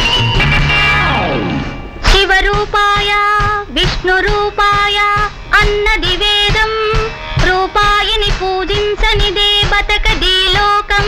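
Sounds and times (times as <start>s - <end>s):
woman singing: 2.0s - 11.0s.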